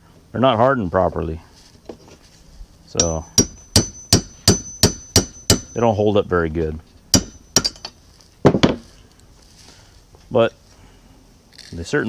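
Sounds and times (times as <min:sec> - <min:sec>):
metal knocks of hammer and punch: 0:03.0 - 0:05.9, 0:07.1 - 0:08.8.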